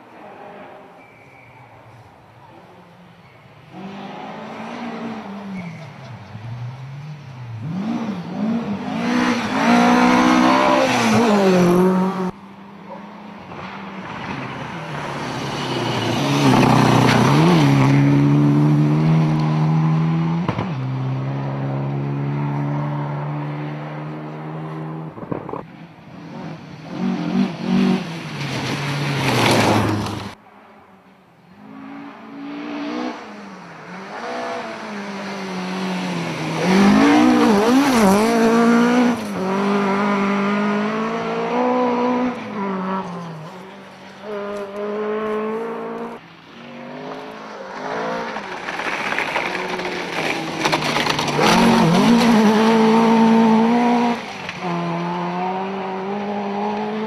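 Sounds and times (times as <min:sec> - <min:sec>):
rally cars passing at speed: 0:00.0 - 0:57.0.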